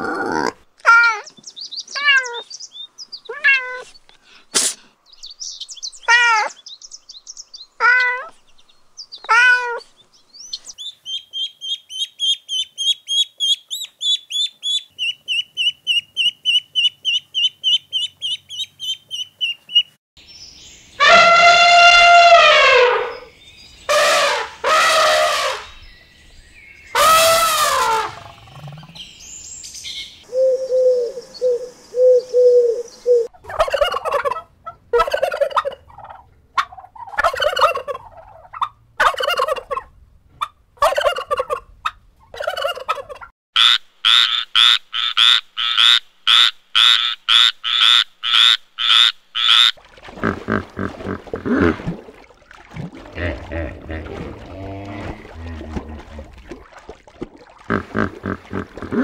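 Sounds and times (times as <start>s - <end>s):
elephant trumpeting: 21.0s - 23.3s, 23.9s - 25.7s, 27.0s - 28.4s
hippopotamus grunting: 27.8s - 29.0s, 50.1s - 52.0s, 52.9s - 56.6s, 57.6s - 59.0s
turkeys gobbling and yelping: 32.0s - 43.3s.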